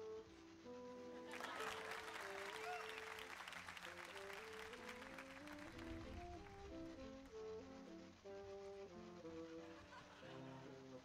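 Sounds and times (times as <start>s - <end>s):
audience applauding: 1.3s - 7.0s.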